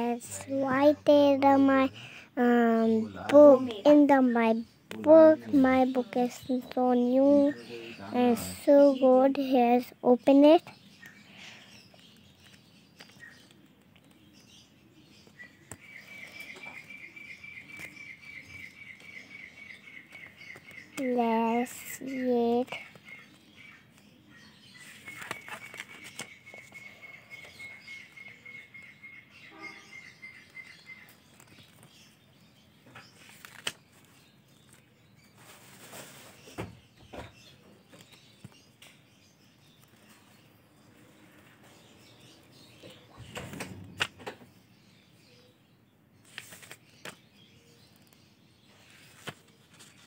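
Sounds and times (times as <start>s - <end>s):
notebook pages turning: 24.8s - 26.8s, 33.0s - 34.9s, 46.2s - 47.2s, 48.8s - 50.0s.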